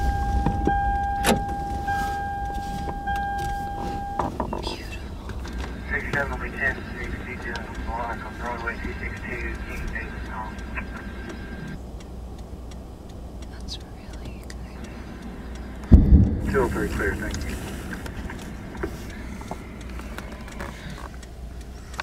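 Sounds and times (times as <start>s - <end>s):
vehicle interior rumble: 0.0s - 22.0s
indistinct voices: 4.2s - 11.8s, 13.4s - 22.0s
loud thump: 15.9s - 18.4s.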